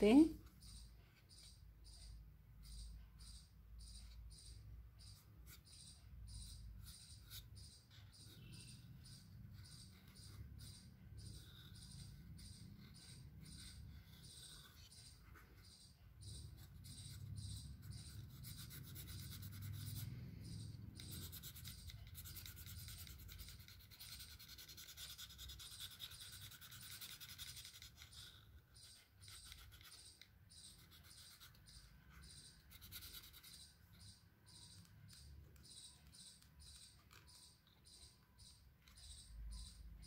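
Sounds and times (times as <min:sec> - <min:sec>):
felt-tip pen scratching on card: 0:00.0 - 0:37.8.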